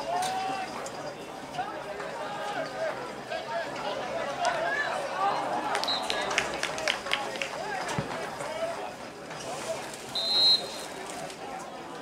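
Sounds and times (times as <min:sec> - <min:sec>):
referee's whistle: 0:05.8 - 0:06.3, 0:10.1 - 0:10.9.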